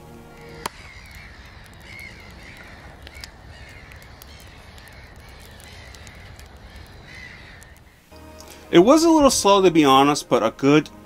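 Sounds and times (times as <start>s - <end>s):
campfire crackling: 0.0s - 11.0s
cawing birds: 0.2s - 8.7s.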